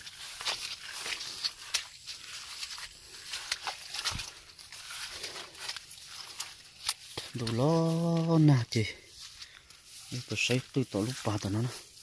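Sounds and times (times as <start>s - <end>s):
footsteps through wet grass: 0.0s - 12.0s.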